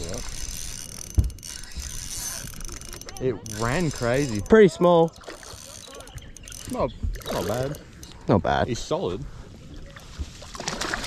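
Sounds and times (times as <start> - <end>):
fishing reel ticking whir: 0.0 - 8.2.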